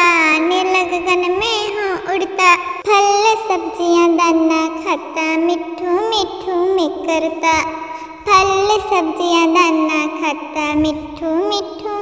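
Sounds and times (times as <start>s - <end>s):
child singing nursery rhyme: 0.0s - 12.0s.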